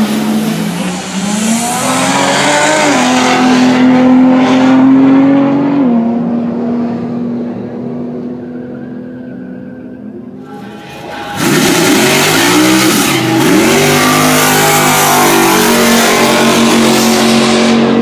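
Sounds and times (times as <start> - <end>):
drag racing car engine: 0.0 - 18.0.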